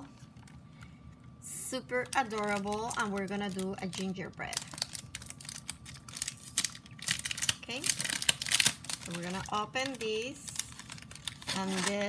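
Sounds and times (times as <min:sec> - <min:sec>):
plastic packet crinkling: 0:01.9 - 0:12.0.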